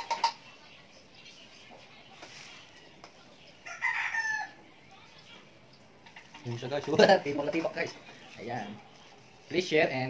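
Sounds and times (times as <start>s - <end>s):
rooster crowing: 3.6s - 4.6s.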